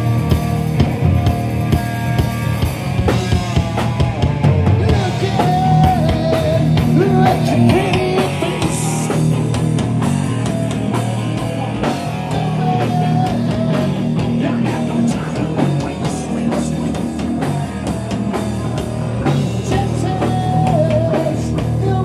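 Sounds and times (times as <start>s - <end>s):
bass guitar: 0.0s - 22.0s
drum kit: 0.0s - 22.0s
electric guitar: 0.0s - 22.0s.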